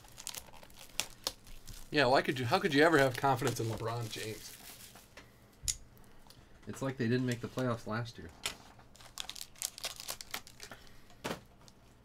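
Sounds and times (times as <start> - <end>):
plastic wrapping crinkling and tearing: 0.0 - 5.1, 8.9 - 10.9.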